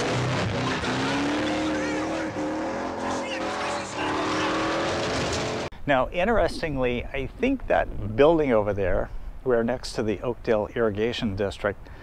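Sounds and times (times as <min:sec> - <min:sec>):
car engine revving: 0:00.0 - 0:05.7
tyres skidding on dirt: 0:00.0 - 0:05.7
dirt noise: 0:00.0 - 0:09.1.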